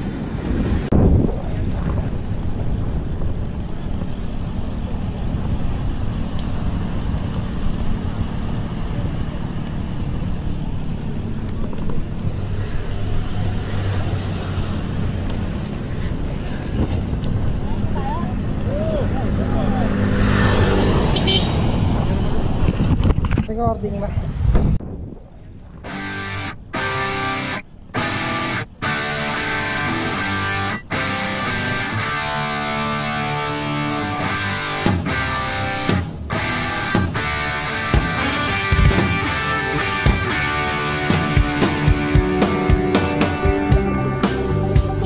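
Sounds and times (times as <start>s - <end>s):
wind on microphone: 0.0s - 6.2s, 20.0s - 26.8s
tyre and road noise: 0.0s - 45.0s.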